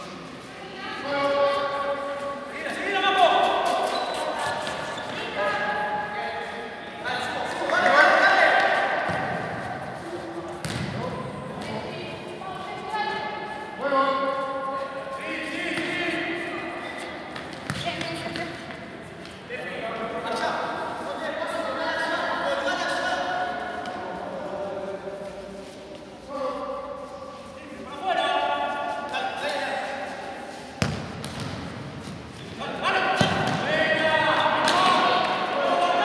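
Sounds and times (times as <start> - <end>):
ball kicked and bouncing: 10.6 - 11.0, 17.4 - 18.5, 30.8 - 32.2.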